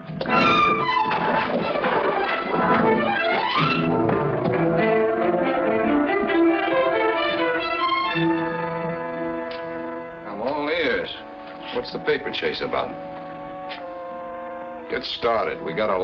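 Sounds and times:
dramatic orchestral music with brass: 0.0s - 16.0s.

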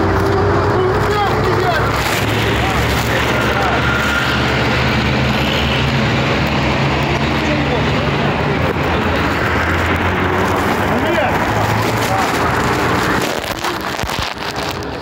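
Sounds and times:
scattered voices: 0.0s - 15.0s
street noise: 0.0s - 15.0s.

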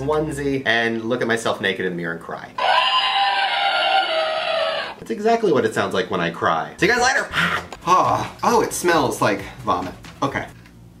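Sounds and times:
distorted toy voice crying wail: 2.6s - 5.0s.

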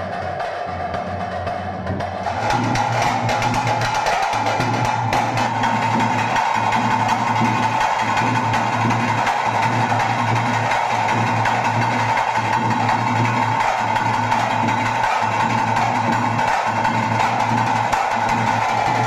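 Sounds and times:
loud drumming with steady beat: 0.0s - 19.0s.

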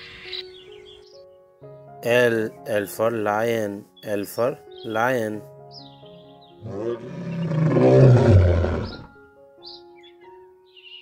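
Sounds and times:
lion roaring: 6.6s - 9.1s.

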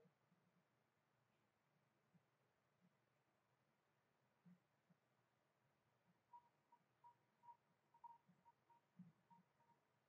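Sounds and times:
faint high-pitched beeps: 5.7s - 10.0s.

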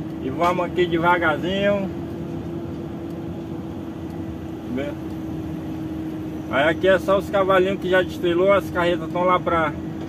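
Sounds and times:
steady hum: 0.0s - 10.0s
truck engine low drone: 0.0s - 10.0s.

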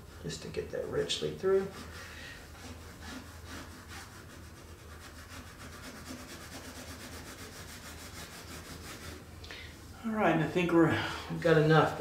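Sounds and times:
colored pencil scratching paper: 1.5s - 9.3s.

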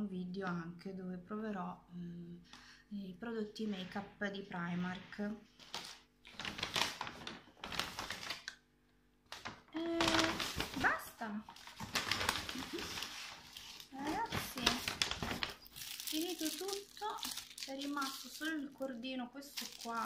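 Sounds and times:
paper bag rustling and crinkling: 4.8s - 8.5s, 9.3s - 20.0s.

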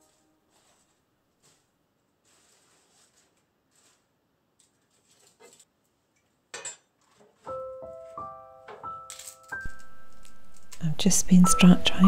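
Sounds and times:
rustling and handling: 0.0s - 11.4s
soft piano music: 7.4s - 12.0s.

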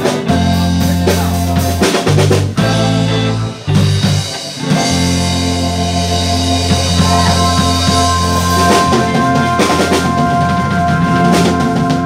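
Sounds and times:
drum and cymbal hits: 0.0s - 12.0s
live rock band playing: 0.0s - 12.0s.

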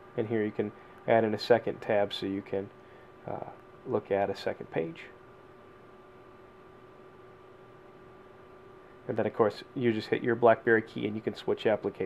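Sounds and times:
low hiss: 0.0s - 12.0s
thin electrical hum: 0.0s - 12.0s.

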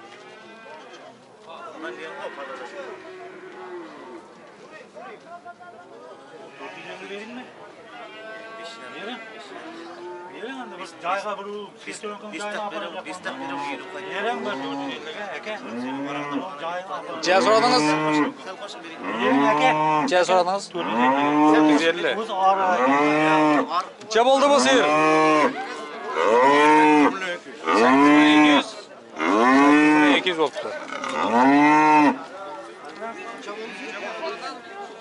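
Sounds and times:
cow mooing: 13.3s - 15.0s, 17.2s - 18.4s, 19.0s - 21.9s, 22.6s - 23.7s, 24.6s - 30.2s, 30.8s - 32.2s.

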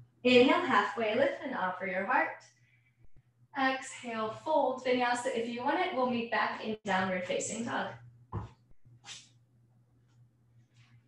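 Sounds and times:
low room hum: 0.0s - 11.0s
soft thump: 8.3s - 8.6s.

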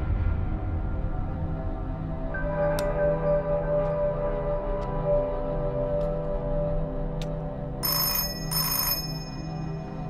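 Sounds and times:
background music: 0.0s - 10.0s
telephone bell ringing: 7.8s - 10.0s.

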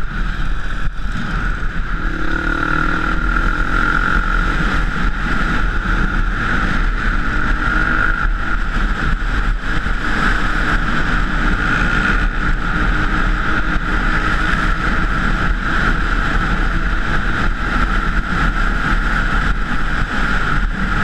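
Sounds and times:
dirt bike engine roar: 0.0s - 21.0s
wind rushing over microphone: 0.0s - 21.0s.

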